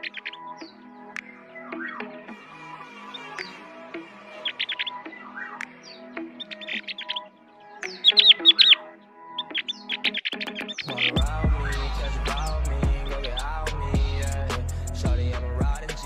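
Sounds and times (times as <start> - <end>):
bird chirping: 0.0 - 16.0
soft background music: 0.0 - 16.0.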